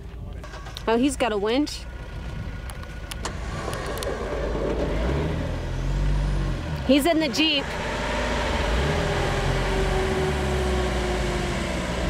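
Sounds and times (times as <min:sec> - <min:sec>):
van engine revving: 0:00.4 - 0:12.0.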